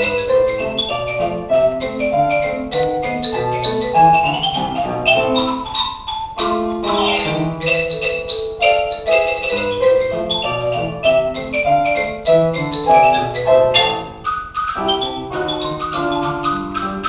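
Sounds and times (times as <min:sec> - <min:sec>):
held lower notes: 0:00.0 - 0:17.0
xylophone melody: 0:00.0 - 0:17.0.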